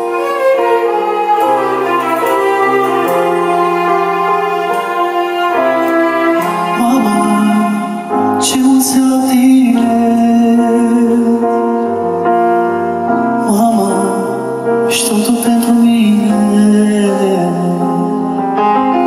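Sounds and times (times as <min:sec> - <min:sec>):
person singing: 0:00.0 - 0:19.0
violin and piano: 0:00.0 - 0:19.0.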